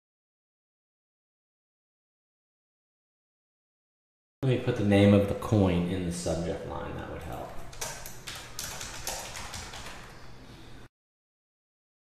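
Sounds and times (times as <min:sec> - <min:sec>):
computer keyboard tapping: 0:07.2 - 0:10.1.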